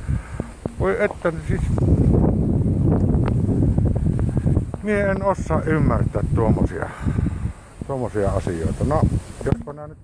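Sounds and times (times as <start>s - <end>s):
wind buffeting microphone: 0.0s - 10.0s.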